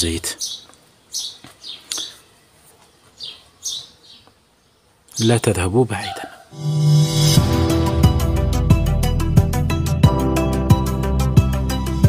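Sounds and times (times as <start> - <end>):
small birds chirping: 0.0 - 6.6.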